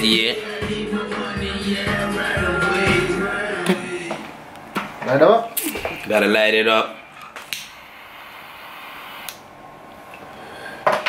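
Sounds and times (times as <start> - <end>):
torch flame hissing: 7.5 - 9.5.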